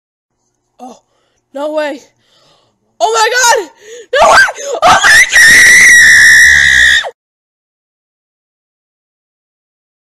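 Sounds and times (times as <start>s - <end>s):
person screaming: 3.5s - 7.2s.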